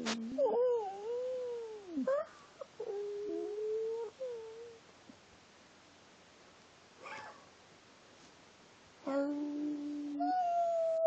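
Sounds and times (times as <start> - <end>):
dog whining: 7.0 - 7.4
dog yip: 7.0 - 7.4.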